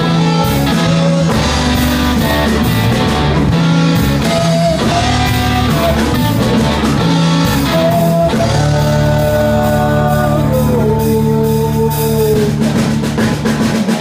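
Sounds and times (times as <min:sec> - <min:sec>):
electric guitar lead notes: 0:00.0 - 0:13.8
bass guitar: 0:00.0 - 0:14.0
drum kit beat: 0:00.0 - 0:14.0.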